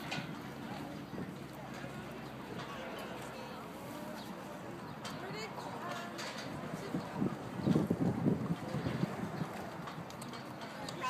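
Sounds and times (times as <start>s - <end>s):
hooves clip-clopping on asphalt: 6.9s - 11.0s.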